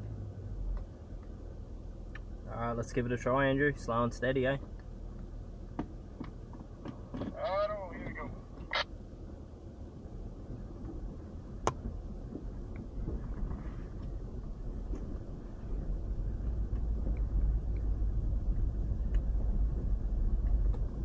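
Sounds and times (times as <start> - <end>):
road and tyre rumble: 0.0 - 21.0.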